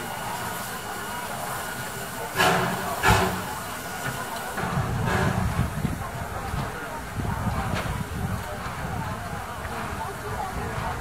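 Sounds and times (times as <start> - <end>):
crowd chatter: 0.0 - 11.0
steam locomotive chuffing: 0.0 - 11.0.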